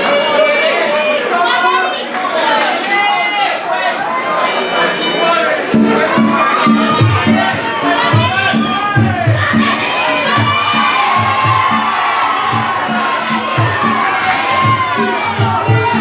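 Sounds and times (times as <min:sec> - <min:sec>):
spectators shouting and cheering: 0:00.0 - 0:16.0
music with steady drum beat: 0:05.8 - 0:16.0.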